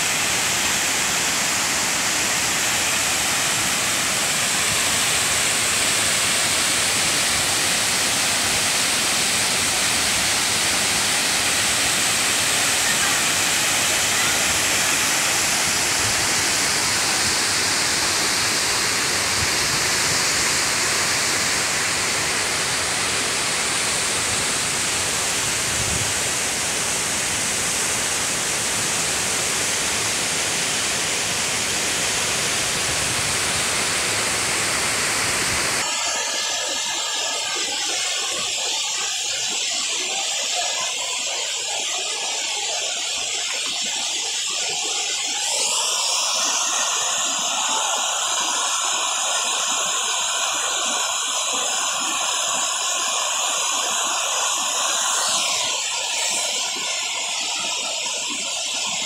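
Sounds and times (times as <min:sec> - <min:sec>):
waterfall rushing: 0:00.0 - 0:59.0.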